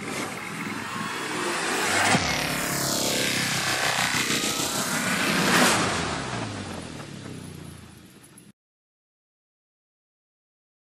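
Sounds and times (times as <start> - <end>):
whooshing electronic sweep: 0.0 - 6.7.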